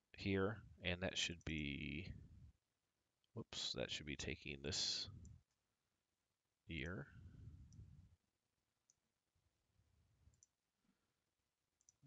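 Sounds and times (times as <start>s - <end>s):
computer mouse clicks: 10.3s - 10.6s, 11.8s - 12.0s.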